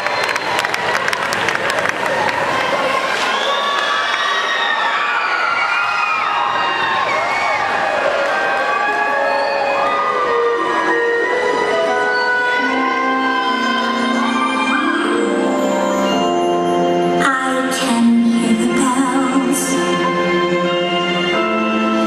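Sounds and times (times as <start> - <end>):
crowd cheering and screaming: 0.0 - 17.1
music with long held notes: 9.2 - 22.0.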